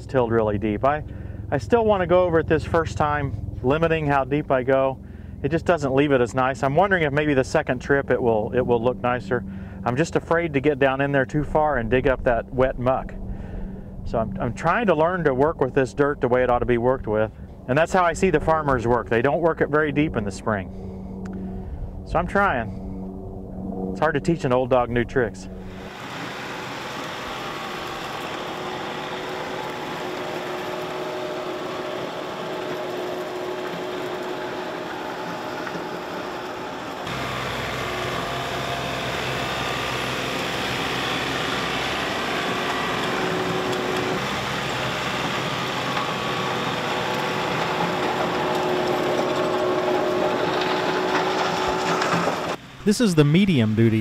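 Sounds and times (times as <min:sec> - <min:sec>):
tractor engine and gearbox drone: 0:00.0 - 0:54.0
tiller tines churning dirt: 0:25.8 - 0:52.6.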